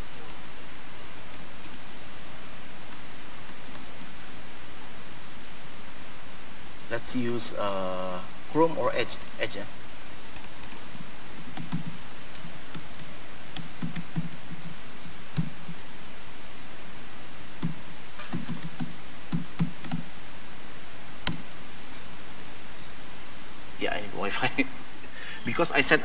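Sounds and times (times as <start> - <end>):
steady hiss: 0.0 - 26.0
typing on laptop keyboard: 10.4 - 10.8, 11.5 - 11.9, 13.5 - 14.7, 17.6 - 20.0.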